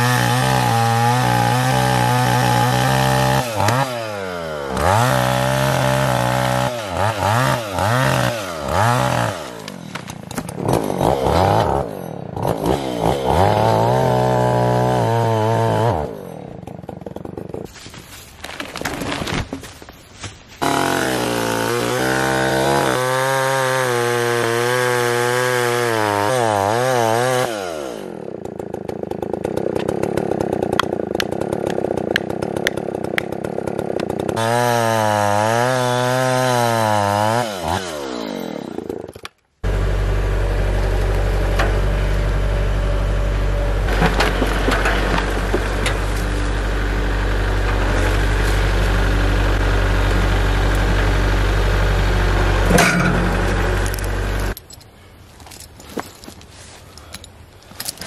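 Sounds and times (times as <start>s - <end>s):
chainsaw cutting into log: 0.0s - 17.8s, 20.6s - 54.6s
tractor diesel engine running: 39.6s - 54.8s.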